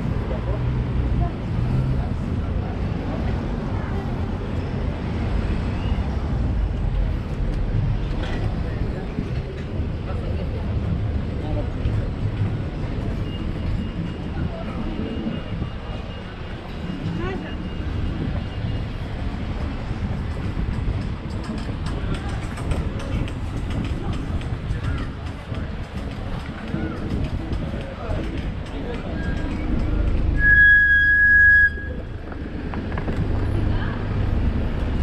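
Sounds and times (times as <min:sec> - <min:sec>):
passers-by talking: 0:00.0 - 0:35.0
road traffic: 0:00.0 - 0:35.0.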